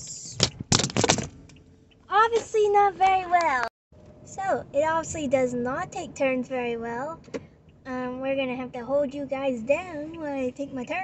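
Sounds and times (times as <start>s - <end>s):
quiet car cabin noise: 0.0s - 11.0s
phone clattering against dashboard: 0.4s - 2.0s.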